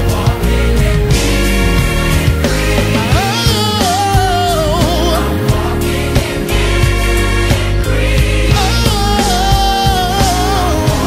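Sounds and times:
band with bass and drums: 0.0s - 11.0s
person singing: 2.8s - 6.0s, 8.5s - 11.0s.

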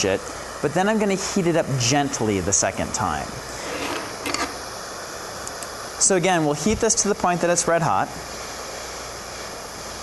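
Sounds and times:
propane torch hissing: 0.0s - 10.0s.

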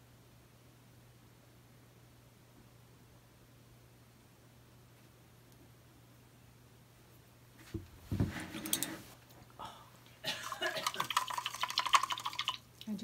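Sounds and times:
knock and rustle: 7.6s - 9.0s.

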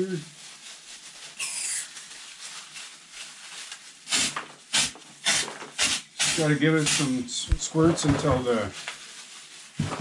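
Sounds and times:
can screwed on with hiss: 1.4s - 2.0s, 4.1s - 7.2s
cleaner spray squirts: 4.1s - 7.2s.

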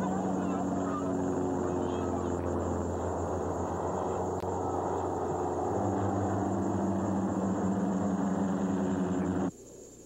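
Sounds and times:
propeller airplane engine droning: 0.0s - 9.5s.

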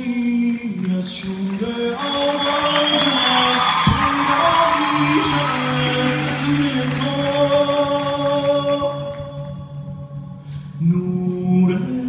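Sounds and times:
keyboard and band accompaniment: 0.0s - 12.0s
man singing: 0.0s - 12.0s.

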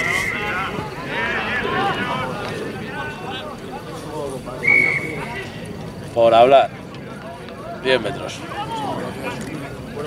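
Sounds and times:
referee's whistle blast: 4.6s - 5.3s.

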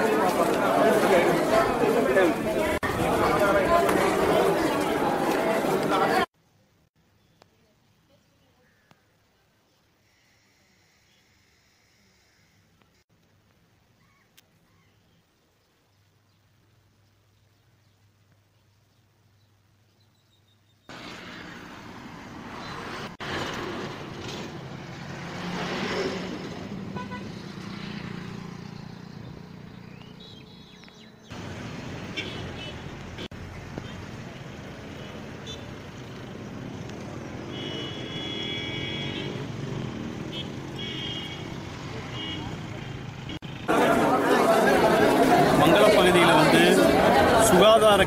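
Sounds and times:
road traffic passing: 0.0s - 6.3s, 20.9s - 48.0s
vehicle horn toots: 27.0s - 27.4s, 32.1s - 32.9s, 37.5s - 39.4s, 40.3s - 42.6s
man's voice: 45.4s - 48.0s.

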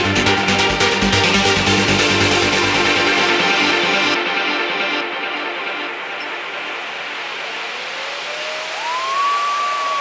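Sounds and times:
white-noise sweep: 5.0s - 10.0s
synth tone gliding up: 6.2s - 10.0s.

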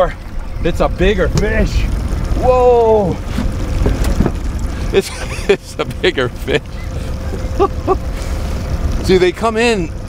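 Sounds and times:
boat engine rumble: 0.0s - 10.0s.

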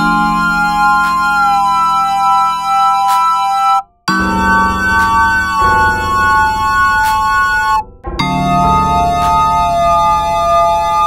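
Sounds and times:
synth bass line: 0.0s - 11.0s
synth lead chord: 0.0s - 11.0s
drum hit: 4.3s - 10.5s.

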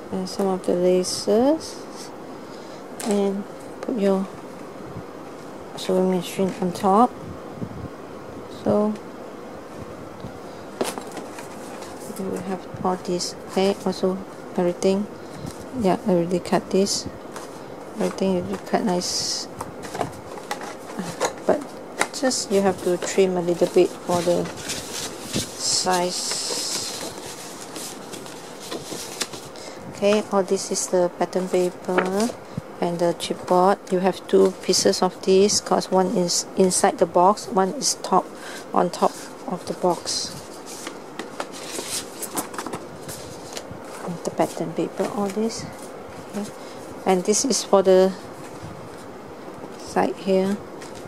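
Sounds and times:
paper rustling: 10.8s - 12.5s, 19.8s - 32.4s, 37.8s - 47.3s, 50.8s - 51.0s.

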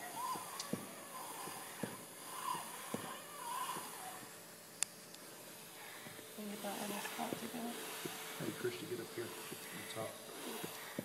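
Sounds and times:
people talking: 6.4s - 7.8s, 8.4s - 10.2s.

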